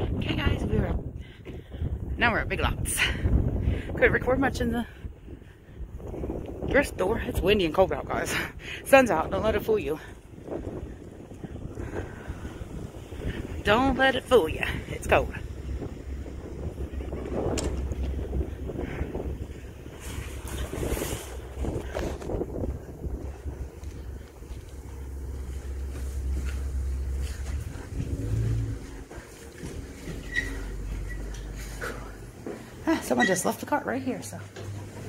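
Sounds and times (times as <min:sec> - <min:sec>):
wind buffeting microphone: 0:00.0 - 0:33.8.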